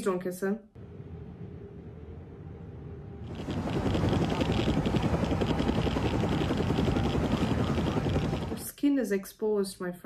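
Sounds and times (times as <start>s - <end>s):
loud mechanical rumble: 0.8s - 8.6s.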